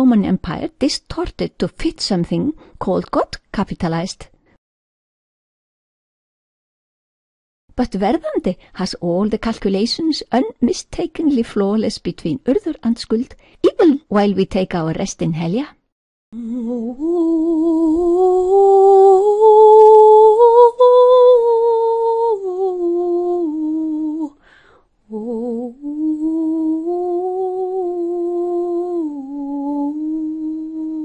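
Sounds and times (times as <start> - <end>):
person humming a melody: 16.4 - 24.4, 25.1 - 31.0.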